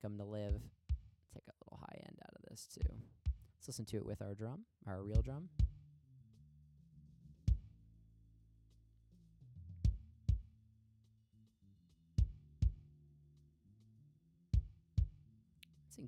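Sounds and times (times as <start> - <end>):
kick drum hits: 0.5 - 1.1, 5.2 - 5.8.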